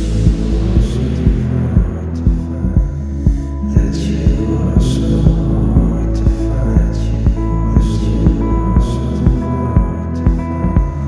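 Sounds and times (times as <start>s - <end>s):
instrumental music with bass and beat: 0.0s - 11.0s.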